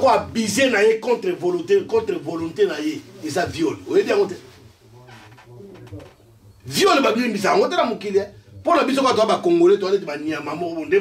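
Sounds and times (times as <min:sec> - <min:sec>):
man speaking loudly: 0:00.0 - 0:04.5, 0:06.7 - 0:11.0
man murmuring quietly: 0:01.7 - 0:06.7, 0:08.3 - 0:08.7.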